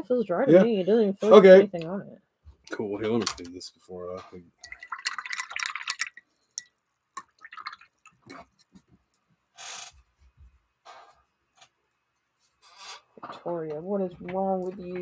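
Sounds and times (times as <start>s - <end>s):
paintbrush clinking in glass jar: 4.6s - 7.9s
small water splashes: 4.6s - 8.4s.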